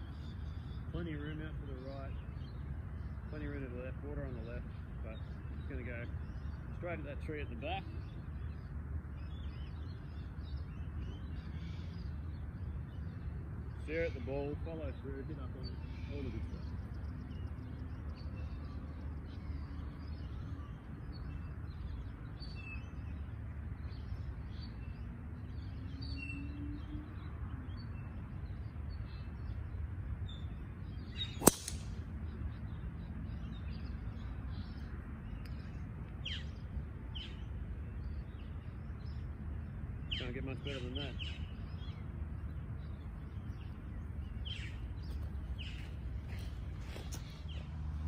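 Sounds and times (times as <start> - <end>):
birds chirping: 0.0 - 48.0
golf club striking ball: 31.4 - 32.0.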